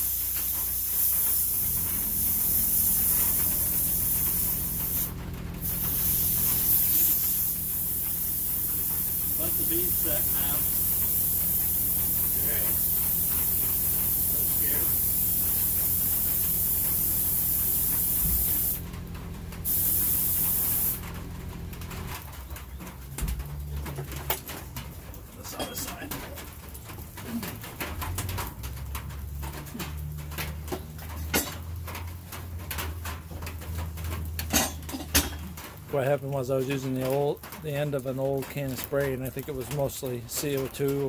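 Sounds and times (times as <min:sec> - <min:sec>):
compressed air hissing into tire: 0:00.0 - 0:18.9, 0:19.6 - 0:21.2
clicks and knocks of tire handling: 0:21.0 - 0:41.0.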